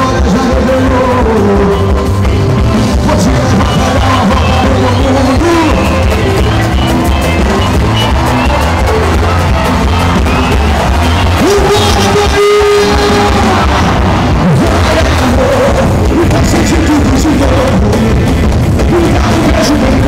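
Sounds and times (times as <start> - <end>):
heavy bass beat: 0.0 - 20.0
live band music: 0.0 - 20.0.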